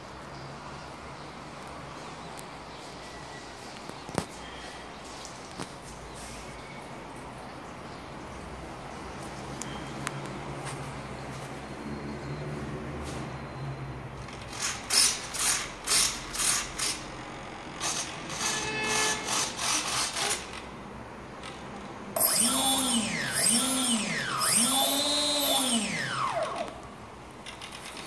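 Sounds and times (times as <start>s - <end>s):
short mechanical clicks and buzzes: 17.7s - 20.6s, 22.2s - 26.8s
electric motor whine: 22.2s - 26.6s.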